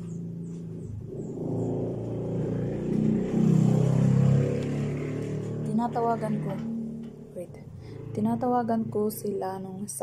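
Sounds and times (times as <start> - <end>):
vehicle engine passing by: 0.0 - 10.0.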